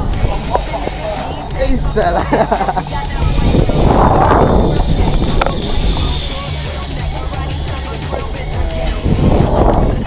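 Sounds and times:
background music: 0:00.0 - 0:10.0
wind rushing over microphone: 0:00.0 - 0:10.0.

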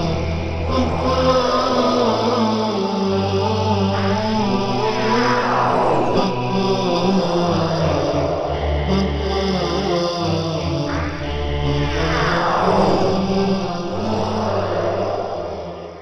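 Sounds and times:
chant-like vocal: 0:00.0 - 0:16.0
low sustained drone: 0:00.0 - 0:16.0
rising and falling sweeps: 0:00.0 - 0:16.0.

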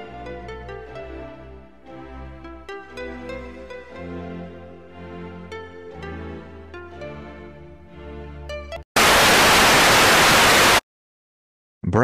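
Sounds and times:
television static hiss: 0:09.0 - 0:10.8.

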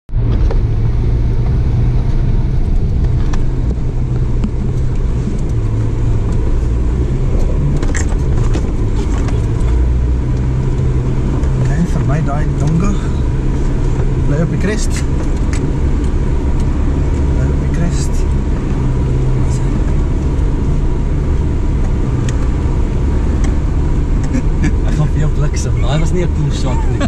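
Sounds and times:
vehicle engine running: 0:00.1 - 0:27.0.

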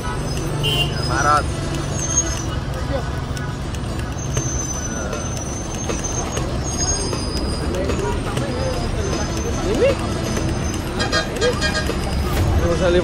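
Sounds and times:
bus engine rumble: 0:00.0 - 0:13.0
crowd voices: 0:00.0 - 0:13.0.

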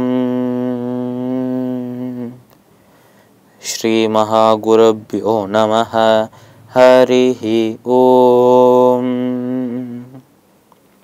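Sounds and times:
man chanting: 0:00.0 - 0:02.4, 0:03.6 - 0:10.2.

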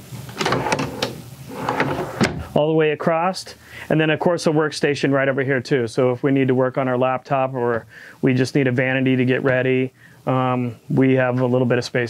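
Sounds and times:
drawer sliding rumble: 0:00.3 - 0:02.5
drawers clicking and knocking: 0:00.3 - 0:02.5.

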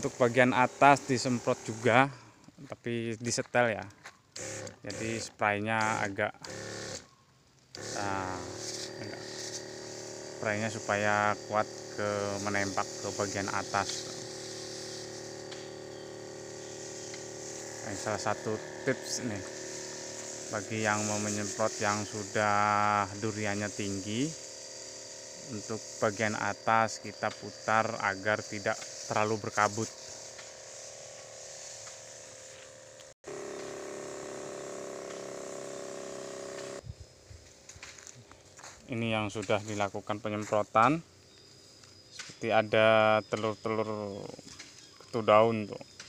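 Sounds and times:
pump motor humming: 0:00.0 - 0:02.1, 0:04.4 - 0:07.0, 0:07.8 - 0:36.8
faint hiss of spray mist: 0:00.0 - 0:02.7, 0:07.8 - 0:37.1.

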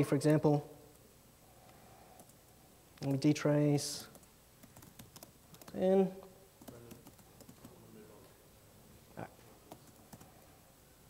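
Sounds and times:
laptop keyboard typing: 0:02.2 - 0:02.4, 0:04.1 - 0:05.9, 0:06.6 - 0:07.8, 0:09.7 - 0:10.4.

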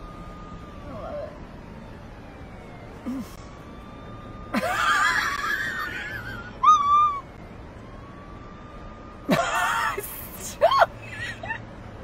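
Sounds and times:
person squealing laughter: 0:04.6 - 0:07.2.

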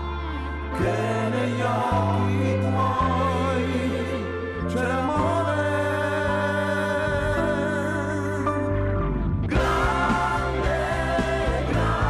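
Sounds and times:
choir-like singing: 0:00.0 - 0:08.4, 0:09.5 - 0:12.0
held bass notes: 0:00.0 - 0:12.0.

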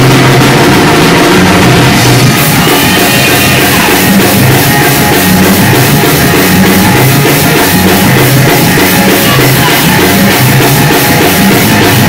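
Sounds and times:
drum kit: 0:00.0 - 0:12.0
low bass notes: 0:00.0 - 0:12.0
praise band playing loud music: 0:00.0 - 0:12.0.

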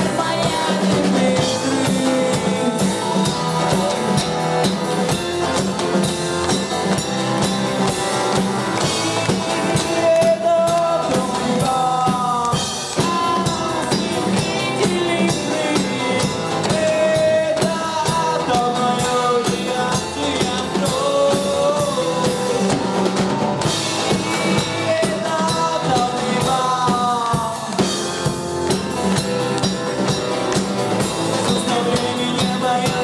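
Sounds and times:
person singing into microphone: 0:00.0 - 0:04.4, 0:09.6 - 0:23.0, 0:24.0 - 0:28.2, 0:31.2 - 0:33.0
drum-kit beat: 0:00.0 - 0:33.0
live pop-rock band: 0:00.0 - 0:33.0.

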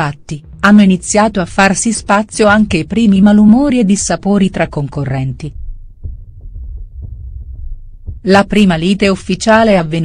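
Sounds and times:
low throbbing hum: 0:00.0 - 0:09.9
faint irregular pulses: 0:00.0 - 0:10.0.

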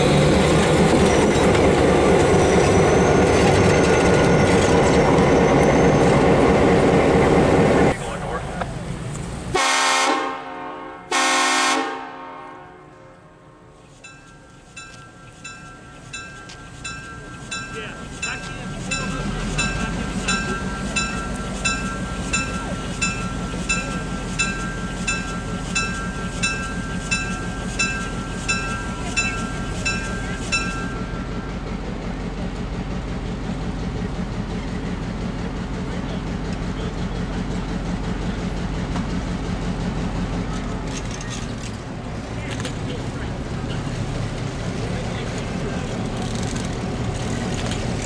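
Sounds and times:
diesel locomotive engine running: 0:00.0 - 0:48.0
locomotive bell ringing: 0:14.0 - 0:31.8.

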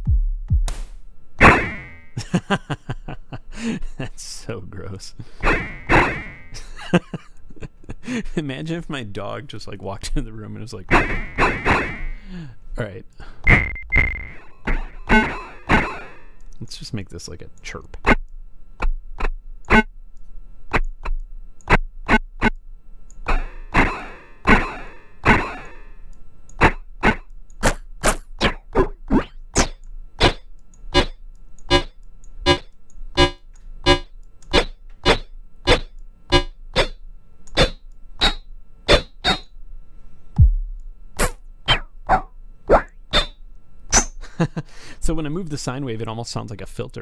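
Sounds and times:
synthesized sine chirp hits: 0:00.0 - 0:02.0, 0:13.4 - 0:16.2, 0:31.0 - 0:36.9, 0:40.4 - 0:41.8
low steady hum: 0:01.0 - 0:47.0.

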